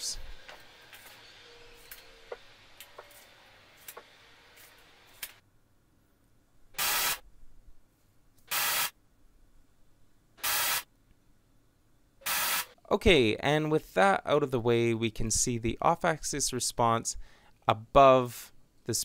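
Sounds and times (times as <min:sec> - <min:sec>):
hiss-like test noise bursts: 0:06.8 - 0:07.2, 0:08.5 - 0:09.0, 0:10.4 - 0:10.9, 0:12.2 - 0:12.8.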